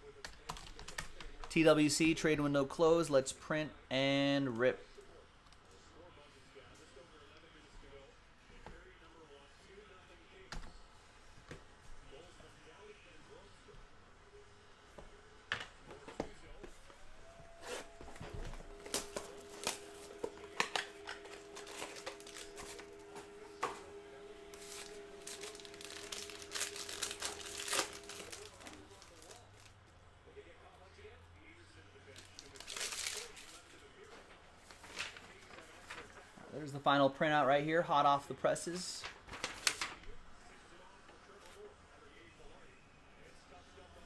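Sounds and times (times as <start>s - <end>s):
steady hum: 16.3s - 32.1s
foil packs tearing and crinkling: 18.7s - 23.1s, 24.5s - 29.7s, 32.2s - 33.6s.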